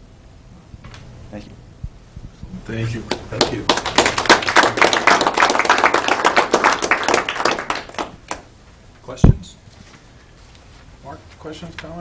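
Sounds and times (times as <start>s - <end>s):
audience clapping: 3.0s - 8.5s.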